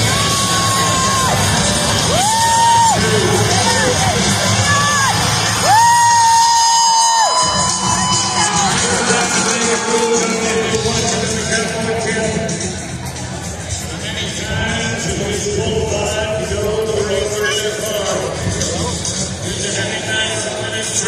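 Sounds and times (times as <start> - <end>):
crowd cheering: 0.0 - 12.6
loud music from speakers: 0.0 - 21.0
person whooping: 2.1 - 3.1, 4.7 - 8.8.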